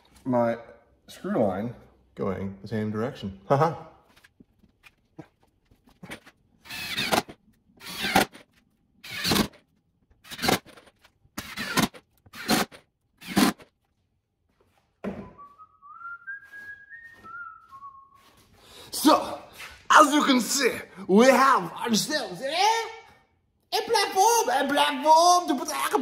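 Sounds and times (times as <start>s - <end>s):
man whistling a tune: 15.2s - 18.4s.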